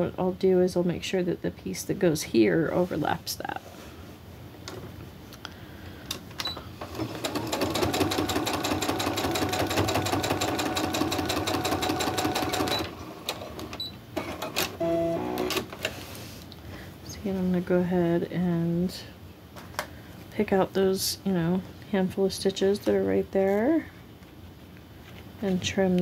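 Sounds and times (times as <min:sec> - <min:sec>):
sewing machine stitching: 0:06.8 - 0:15.8.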